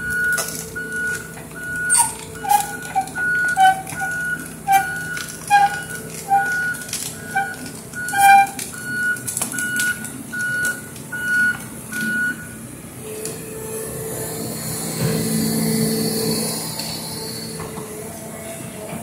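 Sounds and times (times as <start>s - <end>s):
machine squeaks: 0.0s - 12.4s, 14.3s - 18.0s
excavator motion alarm beeping: 0.0s - 12.6s
diesel engine running: 0.0s - 19.0s.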